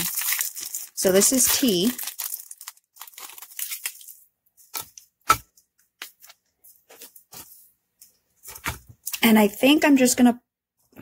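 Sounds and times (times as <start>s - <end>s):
plastic wrapper crinkling: 0.0s - 7.6s.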